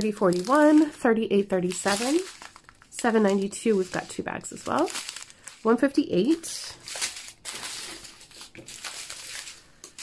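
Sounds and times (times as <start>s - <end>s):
plastic bags crinkling: 0.0s - 10.0s.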